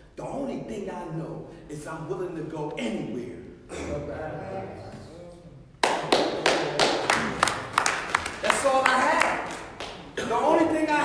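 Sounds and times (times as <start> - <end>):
person clapping hands: 5.8 - 10.2.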